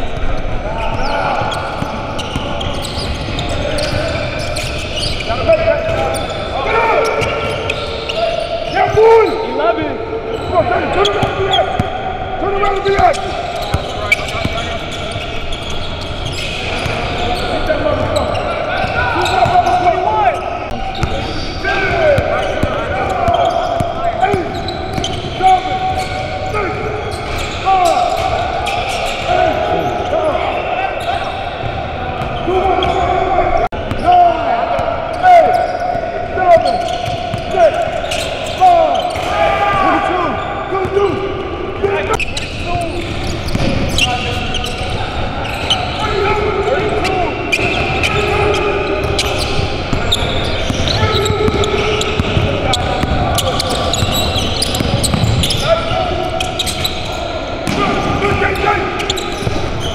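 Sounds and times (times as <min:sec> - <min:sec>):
sneakers squeaking on court: 0:00.0 - 0:34.2, 0:34.8 - 0:59.9
players calling out: 0:00.0 - 0:59.9
basketball bouncing on wooden floor: 0:53.9 - 0:55.5.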